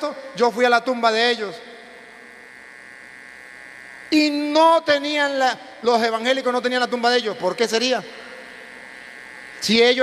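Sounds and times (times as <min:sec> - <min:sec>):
electrical hum and buzz: 0:00.0 - 0:10.0.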